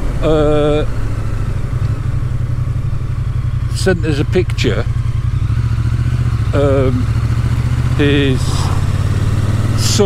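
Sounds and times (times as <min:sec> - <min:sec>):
motorcycle engine rumbling: 0:00.0 - 0:10.0
road noise: 0:00.0 - 0:10.0.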